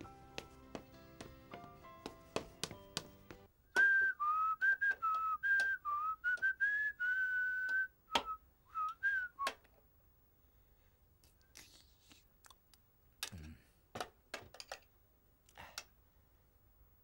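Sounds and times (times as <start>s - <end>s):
background music: 0.0s - 3.5s
man whistling a tune: 3.7s - 9.5s.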